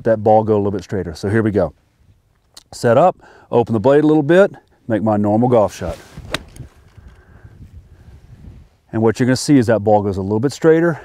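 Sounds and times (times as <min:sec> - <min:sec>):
golf club striking ball: 0:06.2 - 0:06.7.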